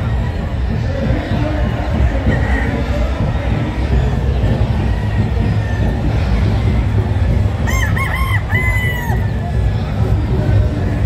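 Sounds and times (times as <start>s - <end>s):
rooster crowing: 7.7s - 9.3s.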